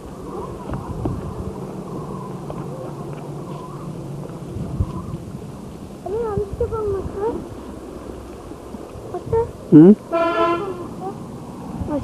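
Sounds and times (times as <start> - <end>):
video recording hum and hiss: 0.0 - 12.0.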